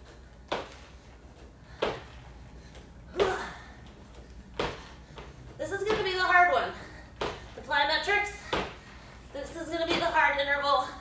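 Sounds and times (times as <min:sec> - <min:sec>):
feet landing on wooden floor: 0:00.5 - 0:02.2, 0:04.1 - 0:06.3, 0:07.1 - 0:07.6, 0:08.4 - 0:08.9
woman's voice: 0:05.6 - 0:06.9, 0:07.6 - 0:08.6, 0:09.3 - 0:11.0.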